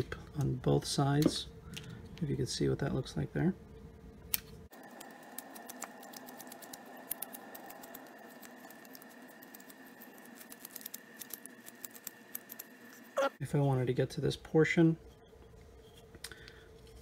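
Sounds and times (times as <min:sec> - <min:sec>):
knife carving wood: 0:04.9 - 0:13.2.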